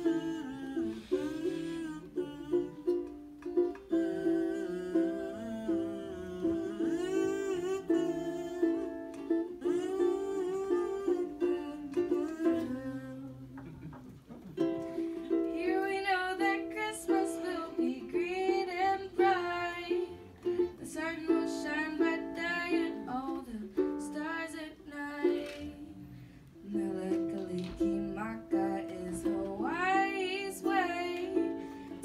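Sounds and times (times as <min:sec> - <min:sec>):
woman singing a carol: 0:00.0 - 0:13.7, 0:15.4 - 0:32.0
ukulele strumming: 0:00.0 - 0:32.0.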